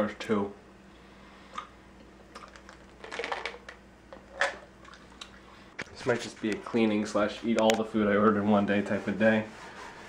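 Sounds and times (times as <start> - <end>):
person chewing gummies: 2.3 - 3.6.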